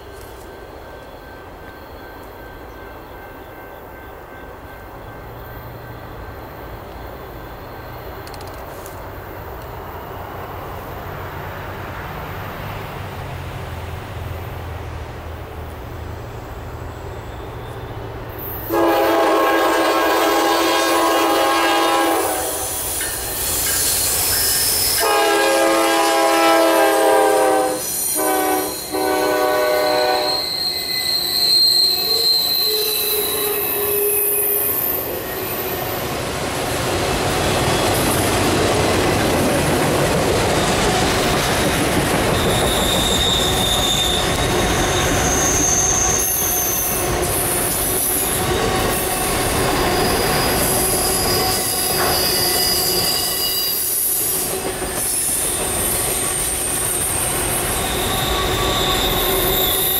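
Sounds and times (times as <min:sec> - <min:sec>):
train wheels rumbling on rail: 0:00.0 - 0:59.9
high-pitched wheel squeal: 0:16.9 - 0:18.7, 0:22.3 - 0:25.0, 0:27.6 - 0:36.0, 0:42.2 - 0:59.9
locomotive horn blasts: 0:18.6 - 0:22.7, 0:25.0 - 0:30.6.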